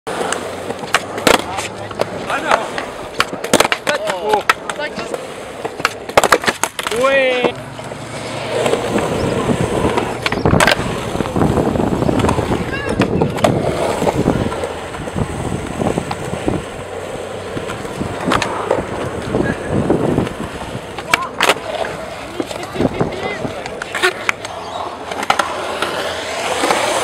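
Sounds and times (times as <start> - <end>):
skateboard clacks: 0.1 - 27.0
skateboard wheels rolling on concrete: 0.1 - 27.0.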